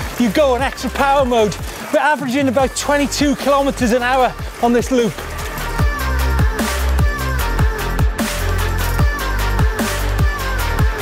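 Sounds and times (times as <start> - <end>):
drum and bass music: 0.0 - 11.0.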